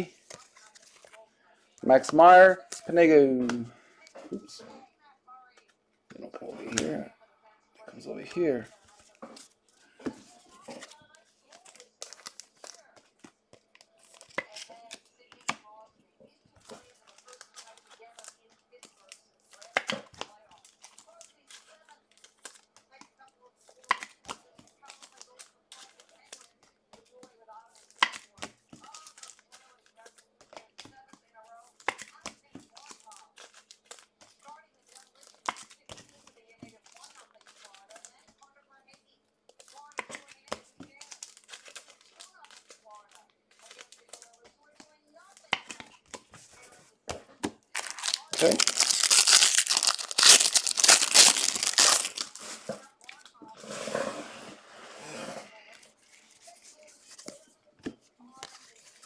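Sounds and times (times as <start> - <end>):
trading cards shuffled: 0.2 - 1.2, 8.9 - 15.6, 31.7 - 38.2, 39.5 - 44.5, 45.4 - 52.9, 55.8 - 59.0
foil wrapper torn and crinkled: 39.6 - 44.3, 47.7 - 53.0.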